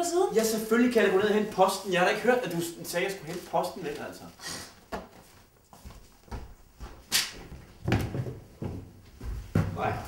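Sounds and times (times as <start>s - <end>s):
footsteps: 2.4s - 10.0s
dull uneven thuds: 6.2s - 10.0s.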